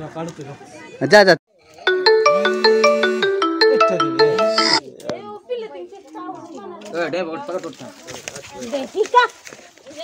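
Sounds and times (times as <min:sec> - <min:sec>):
marimba-like phone ringtone: 0:01.9 - 0:04.8.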